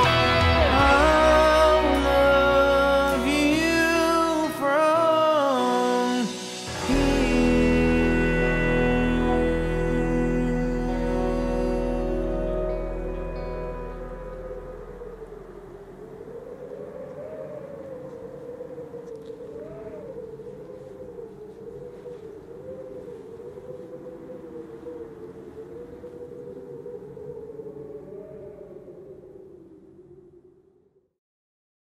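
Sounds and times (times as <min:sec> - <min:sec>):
long wavering tone: 0:00.0 - 0:17.6.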